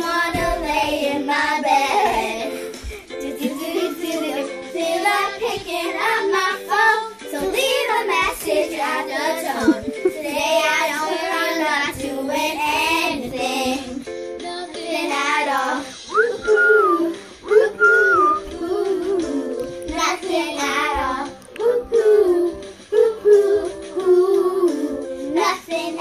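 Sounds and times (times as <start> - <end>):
girls singing along: 0.0 - 26.0
pop song music: 0.0 - 26.0.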